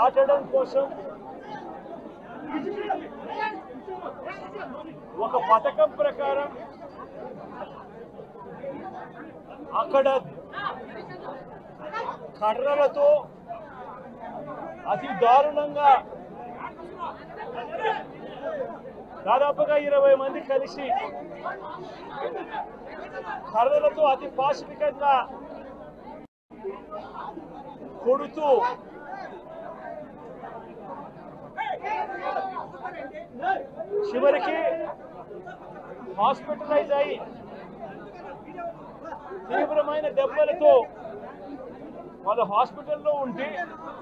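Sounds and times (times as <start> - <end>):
crowd chatter: 0.0 - 44.0
man speaking: 39.5 - 41.0.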